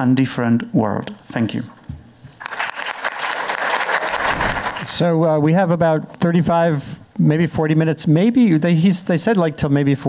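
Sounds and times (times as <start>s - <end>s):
audience applauding: 2.4s - 4.9s.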